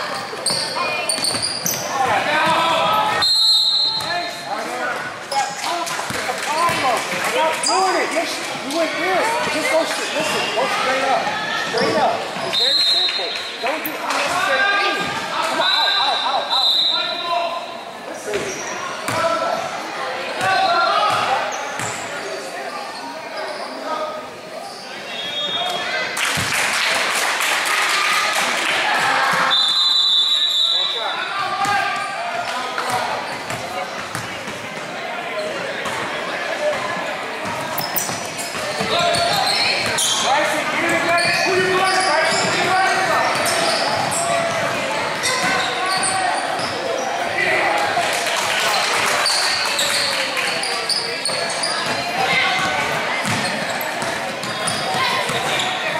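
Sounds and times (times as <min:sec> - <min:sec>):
indistinct crowd and player voices: 0:00.0 - 0:55.9
basketball bouncing on hardwood: 0:52.6 - 0:53.4.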